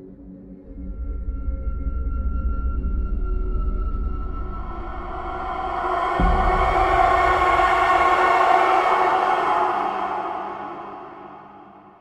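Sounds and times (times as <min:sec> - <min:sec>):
dissonant horror wail: 0:03.4 - 0:12.0.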